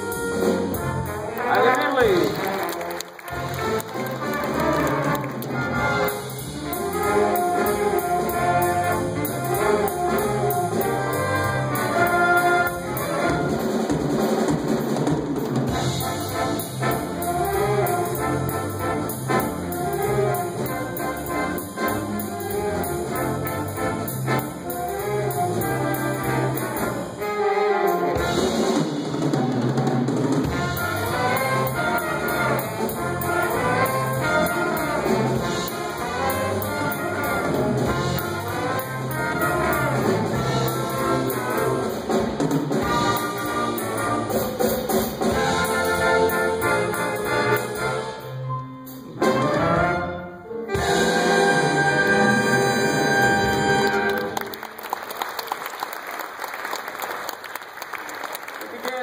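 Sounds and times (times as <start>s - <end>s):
jazz big band playing swing: 0.0s - 55.8s.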